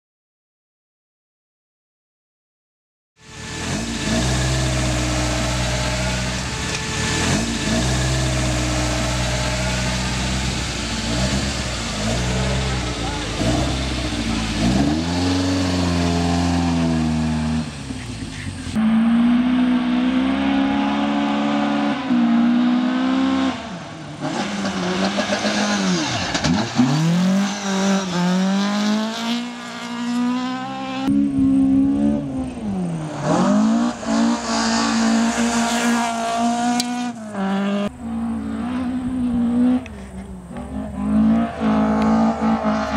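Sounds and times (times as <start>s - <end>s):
car engine revving hard: 3.3s - 42.9s.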